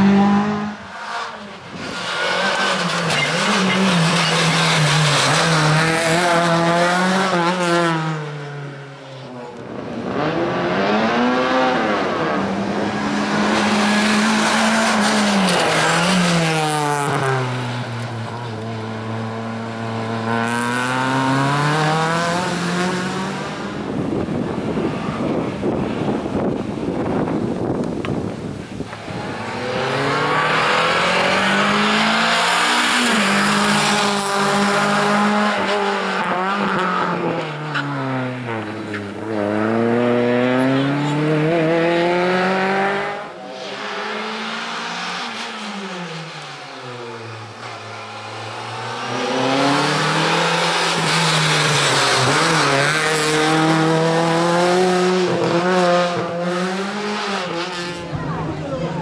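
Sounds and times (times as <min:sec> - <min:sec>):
race car engine revving: 0:00.0 - 0:08.7, 0:09.6 - 0:59.0.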